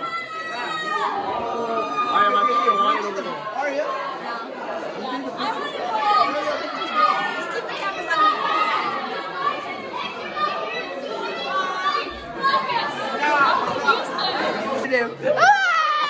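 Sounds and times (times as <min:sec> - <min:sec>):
crowd chatter in large room: 0:00.0 - 0:16.0.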